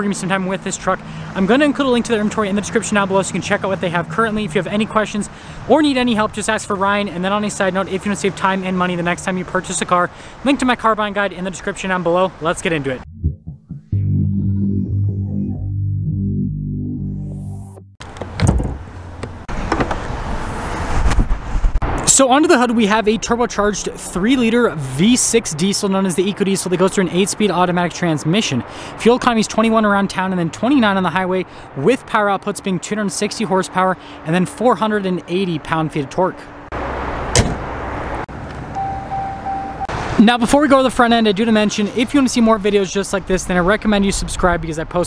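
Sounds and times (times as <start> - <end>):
outdoor background noise: 0.0 - 13.0, 18.0 - 45.0
hood latch releasing clunk: 18.1 - 20.0, 37.3 - 37.6
outdoor rushing noise: 19.5 - 23.5
thin high tone: 38.8 - 39.9.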